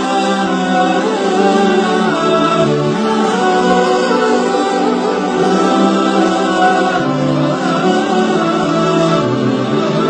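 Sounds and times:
voices singing long notes: 0:00.0 - 0:10.0.

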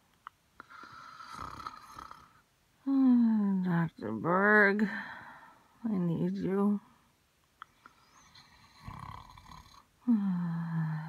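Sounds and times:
woman sighing: 0:10.0 - 0:11.0.

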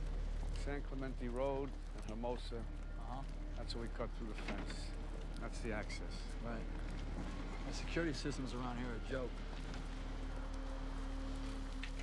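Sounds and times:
low background drone: 0:00.0 - 0:12.0.

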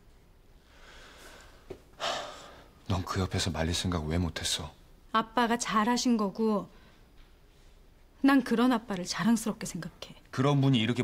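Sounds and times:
man speaking: 0:10.3 - 0:11.0.

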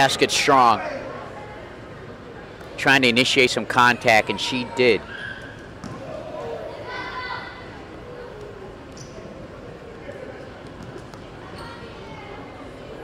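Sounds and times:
crowd murmur: 0:00.0 - 0:13.0.

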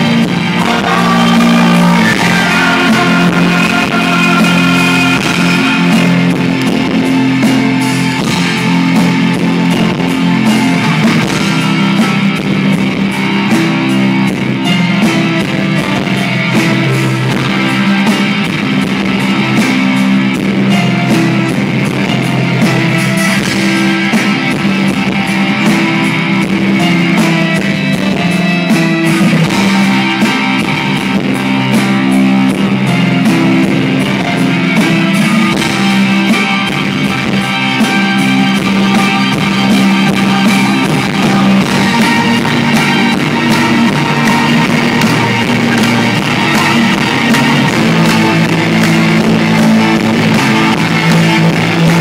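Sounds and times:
electric guitar: 0:00.0 - 0:52.0
live rock band playing: 0:00.0 - 0:52.0
steady drum beat: 0:00.0 - 0:52.0.

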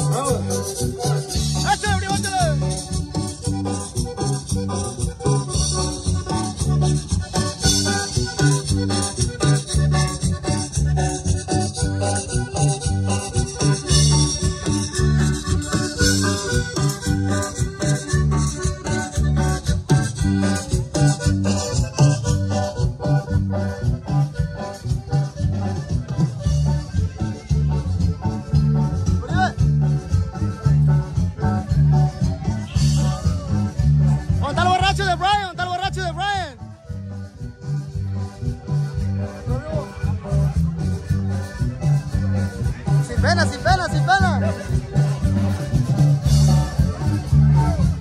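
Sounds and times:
latin dance music over loudspeakers: 0:00.0 - 0:48.0.

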